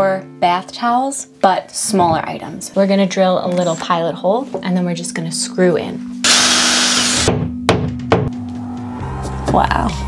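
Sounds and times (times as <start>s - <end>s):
cordless drill boring into wall: 6.2s - 7.3s.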